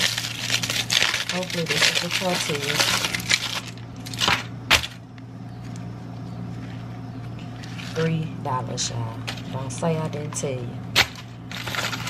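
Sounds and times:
aluminium foil crinkling: 0.0 - 5.0, 6.5 - 8.2, 11.0 - 12.0
low steady hum: 0.0 - 12.0.

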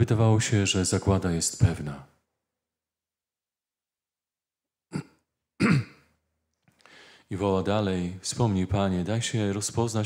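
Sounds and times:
man clearing throat: 4.9 - 6.1
faint breath: 6.7 - 7.3.

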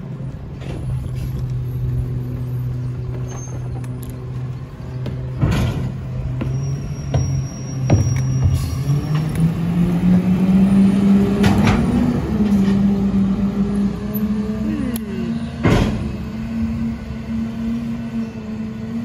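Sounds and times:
garbage truck engine: 0.0 - 19.0.

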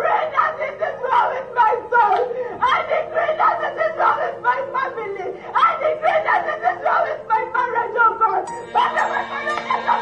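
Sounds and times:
speech: 0.3 - 8.5
person laughing: 8.8 - 10.0.

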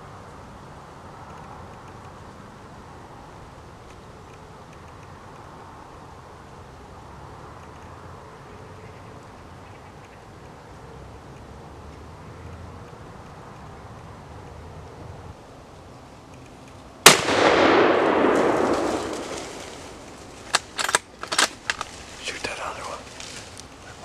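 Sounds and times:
rifle shot with rolling boom: 17.0 - 20.6.

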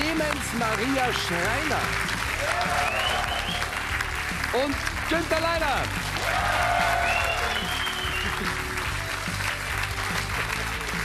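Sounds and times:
audience applauding: 0.0 - 11.0
music playing: 0.0 - 11.0.

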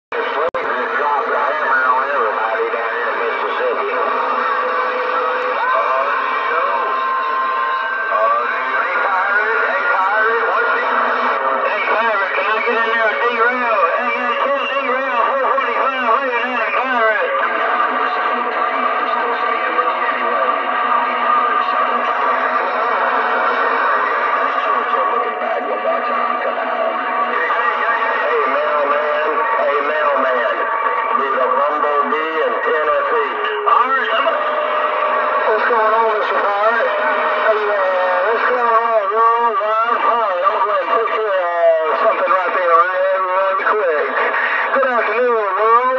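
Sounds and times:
distorted voices over radio: 0.1 - 45.9.

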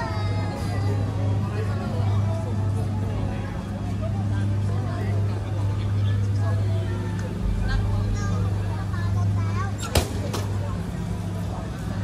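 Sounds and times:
faint voices of passers-by: 0.0 - 12.0.

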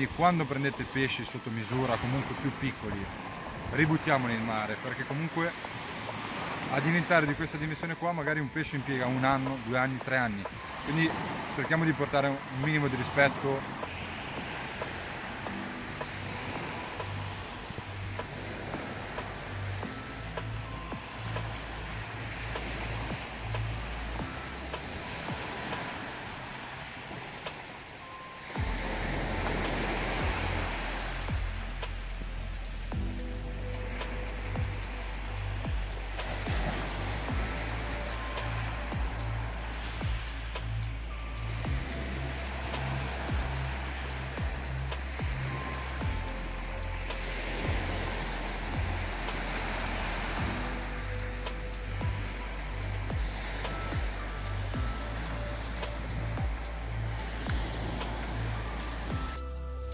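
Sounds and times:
waves breaking on shore: 0.0 - 59.9
music with beat and bass: 13.8 - 25.8, 28.5 - 59.9.

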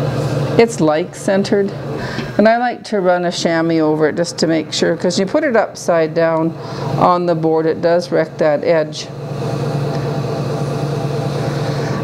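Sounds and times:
potter's wheel motor hum: 0.0 - 12.0.

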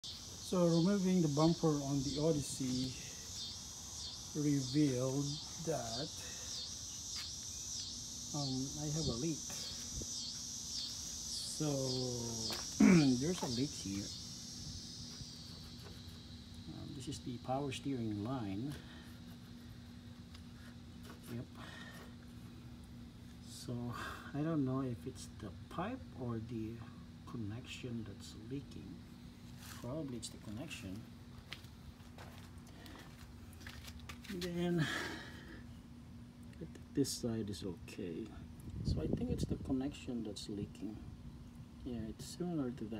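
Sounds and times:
insects buzzing: 0.0 - 42.9
steady low hum: 0.0 - 42.9.

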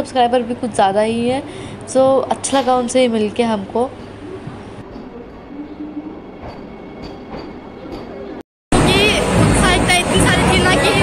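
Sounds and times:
train low rumble: 3.6 - 11.0.

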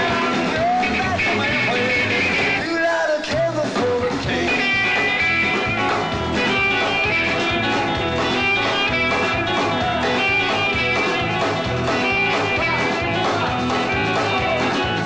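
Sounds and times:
bass and drums: 0.0 - 15.0
electric guitar solo: 4.4 - 15.0.

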